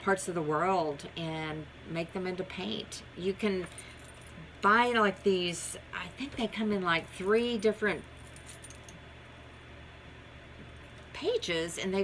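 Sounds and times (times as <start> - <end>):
steady low hum: 0.0 - 12.0
metal bracelets jingling: 8.2 - 9.0.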